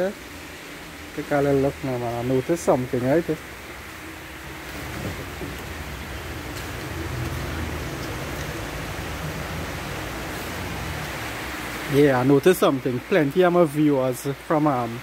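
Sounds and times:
light rain falling: 0.0s - 15.0s.

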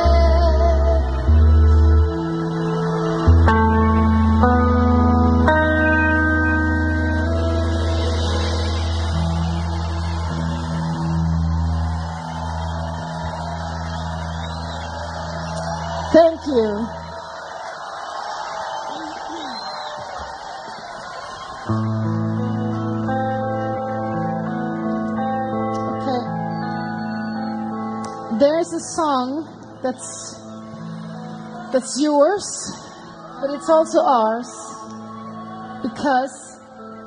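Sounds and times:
crowd cheering: 0.0s - 37.0s
whistles: 12.2s - 16.0s, 18.8s - 20.3s, 26.4s - 28.0s.

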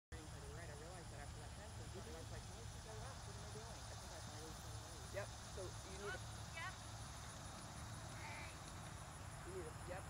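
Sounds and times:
low steady rumble: 0.1s - 10.0s.

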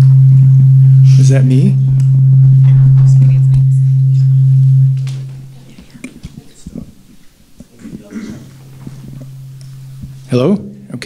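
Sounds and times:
low hum through speakers: 0.0s - 11.0s.

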